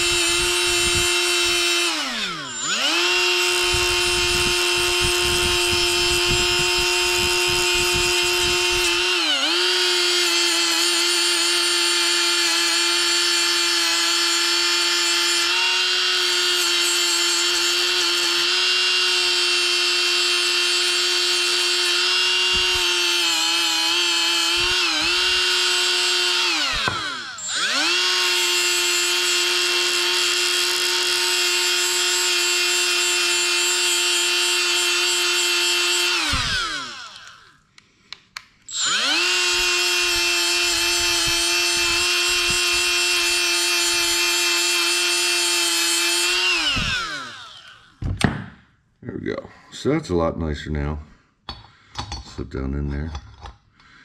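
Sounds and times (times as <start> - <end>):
rotary tool whining: 0.0 - 37.6, 38.6 - 48.4.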